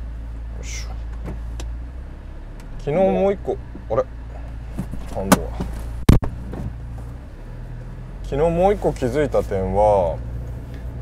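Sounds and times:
car engine humming from inside: 0.0s - 11.0s.

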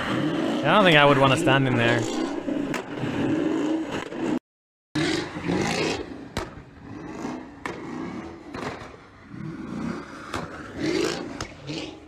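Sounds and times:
car engine revving: 5.0s - 12.0s.

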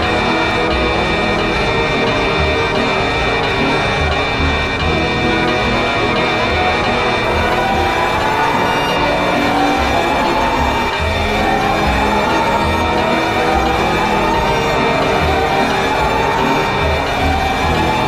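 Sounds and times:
high alarm tones: 7.2s - 18.0s
rising siren-like wail: 7.2s - 18.0s.

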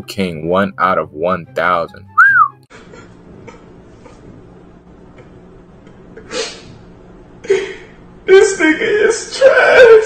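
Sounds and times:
short rising falling whistle: 2.2s - 2.6s.

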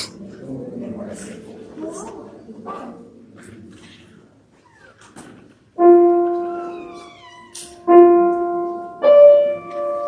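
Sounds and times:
piano note: 5.8s - 10.0s.

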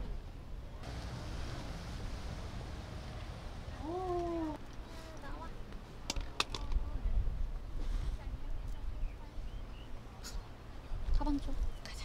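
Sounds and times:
wind rumbling on microphone: 6.5s - 10.0s.

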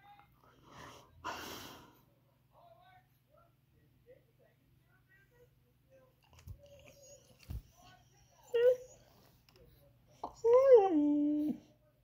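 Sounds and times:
puppy whining: 6.4s - 9.3s, 10.1s - 11.8s.

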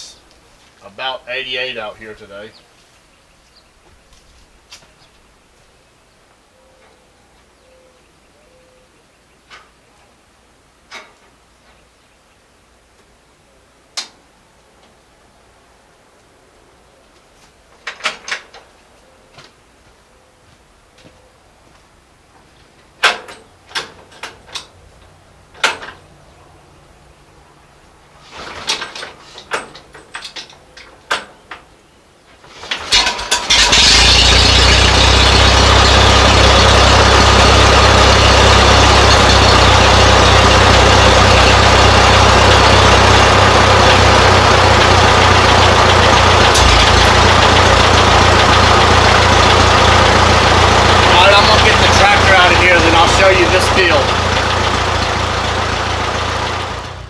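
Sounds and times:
tractor engine running: 32.6s - 57.0s.

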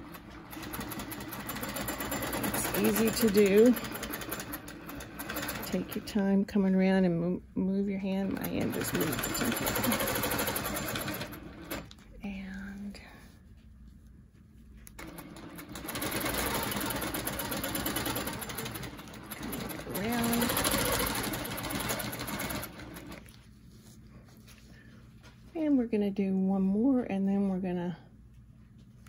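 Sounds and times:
quilting machine stitching: 0.0s - 6.4s, 8.2s - 11.9s, 15.0s - 23.3s.

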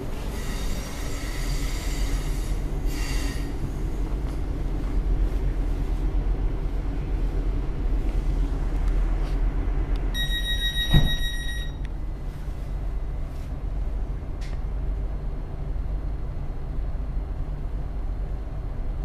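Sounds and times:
train cabin low rumble: 0.0s - 19.0s
electronic door warning tone: 10.2s - 11.9s.

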